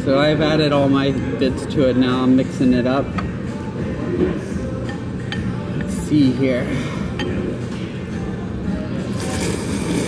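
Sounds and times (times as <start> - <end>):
restaurant background music: 0.0 - 10.0
noodles being slurped: 9.1 - 10.0.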